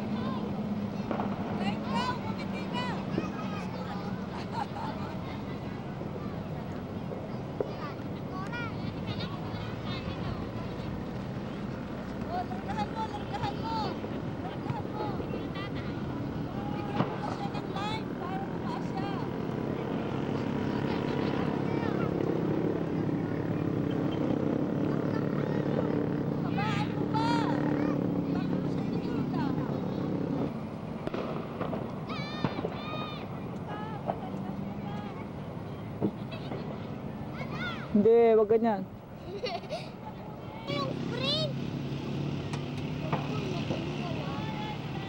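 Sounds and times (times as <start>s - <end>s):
engine drone: 0.0s - 37.9s
outdoor background voices: 0.0s - 45.0s.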